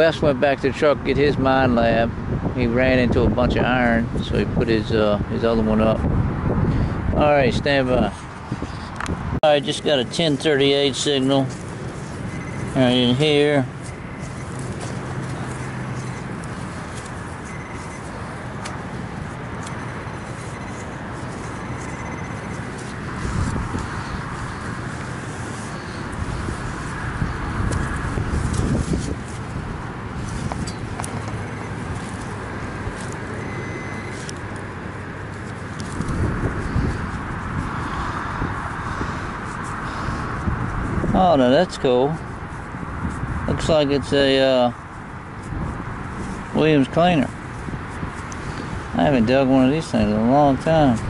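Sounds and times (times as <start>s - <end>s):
wind noise on microphone: 0.0s - 51.0s.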